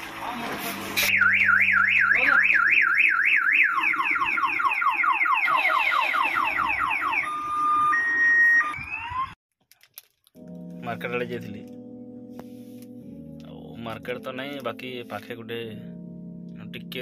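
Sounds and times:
electronic siren horn cycling tones: 1.1 - 9.4.

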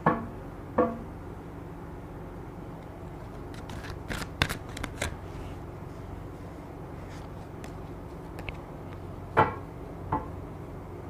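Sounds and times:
cards being shuffled: 3.2 - 5.6, 7.0 - 9.0.

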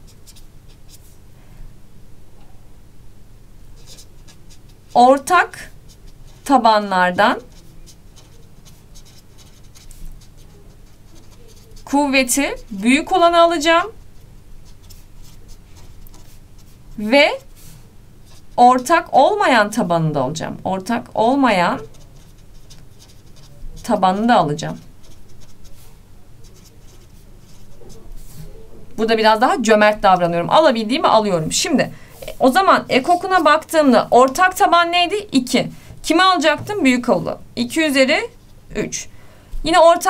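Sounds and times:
marker pen writing on paper: 3.8 - 6.6, 7.2 - 19.0, 21.3 - 28.5, 32.2 - 34.8.

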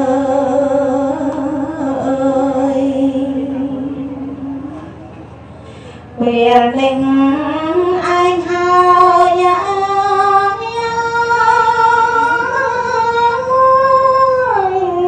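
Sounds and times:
woman chanting: 0.0 - 4.9, 6.2 - 15.0.

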